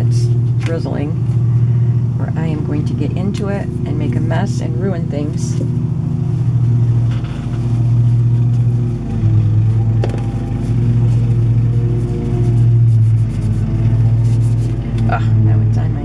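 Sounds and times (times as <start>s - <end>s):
lawn mower engine running: 0.0s - 15.0s.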